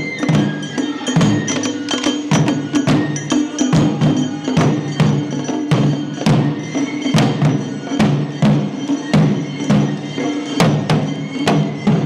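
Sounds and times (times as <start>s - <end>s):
bamboo flutes high melody: 0.0s - 12.0s
taiko drums quick rhythm: 0.0s - 12.0s.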